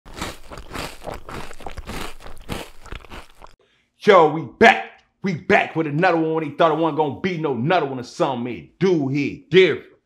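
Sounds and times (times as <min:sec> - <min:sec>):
crunching crackle: 0:00.1 - 0:03.6.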